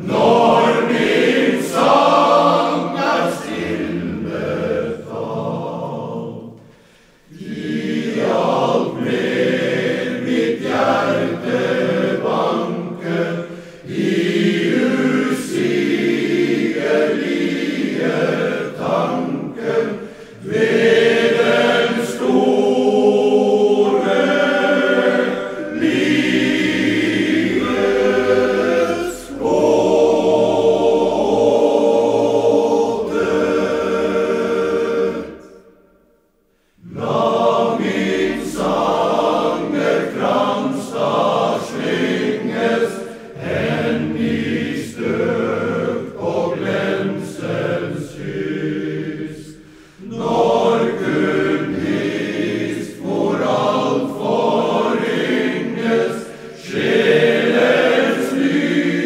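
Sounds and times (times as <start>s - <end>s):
men's choir singing: 0.0s - 35.8s, 36.6s - 59.0s.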